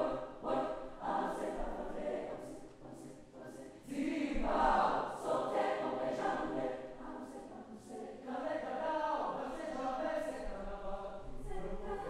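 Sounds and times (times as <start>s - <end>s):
choir of young voices singing: 0.0s - 12.0s.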